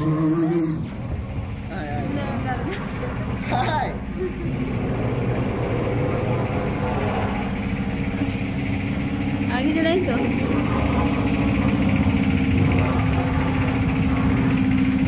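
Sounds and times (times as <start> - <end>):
low rumble: 0.0 - 15.0
voice: 9.5 - 10.3.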